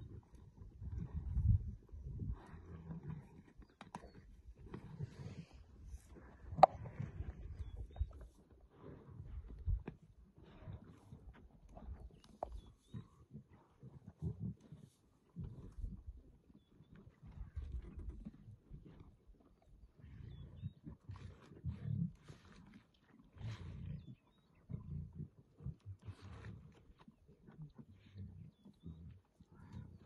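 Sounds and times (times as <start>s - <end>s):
lionesses growling: 0.0s - 9.7s, 10.3s - 19.2s, 19.8s - 26.8s.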